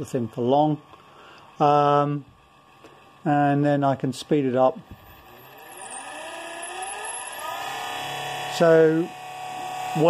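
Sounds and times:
electric motor whine rising: 0.0s - 10.0s.

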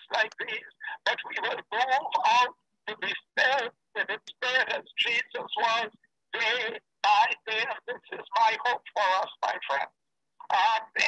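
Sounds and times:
man speaking over video call: 0.0s - 11.0s.

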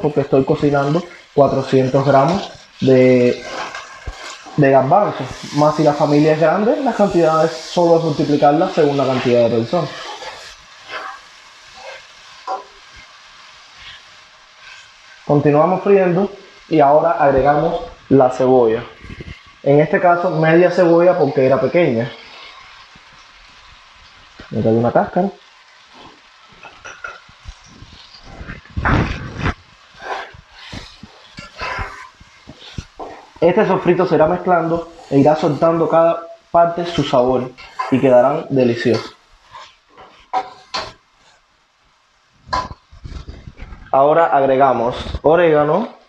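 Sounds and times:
food sizzling in oil: 0.0s - 46.0s.

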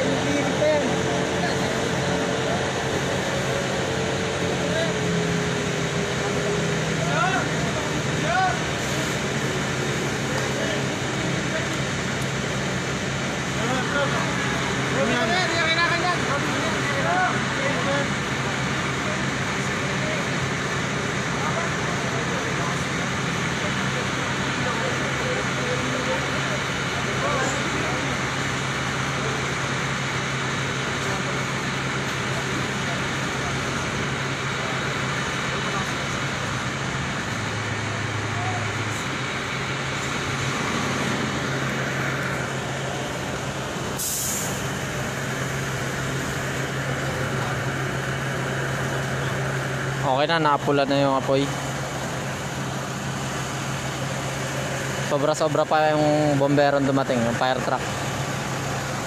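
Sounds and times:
truck engines idling: 0.0s - 59.0s
short sharp hiss: 43.9s - 44.8s.

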